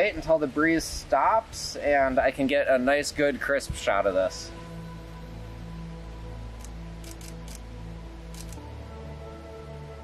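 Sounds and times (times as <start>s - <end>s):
background music with held notes: 0.0s - 10.0s
camera shutter clicks: 6.6s - 7.6s, 8.3s - 8.6s.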